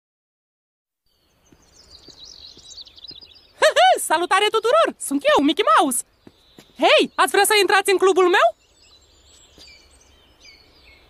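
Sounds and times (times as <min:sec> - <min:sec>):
cartoon birdsong twittering: 0:01.5 - 0:11.0.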